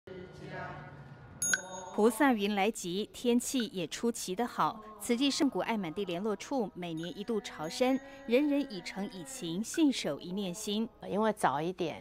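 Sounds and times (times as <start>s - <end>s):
small bowl bell ringing: 1.4s - 2.2s, 6.9s - 10.0s.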